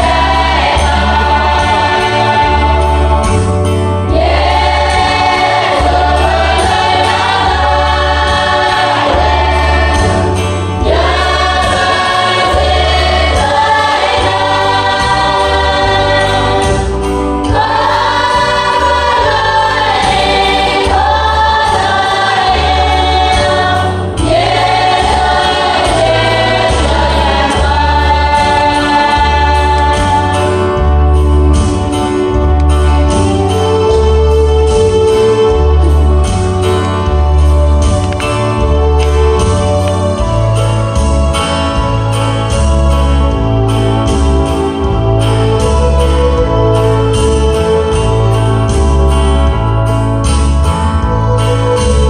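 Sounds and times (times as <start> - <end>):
women's choir singing a hymn: 0.0 - 32.3.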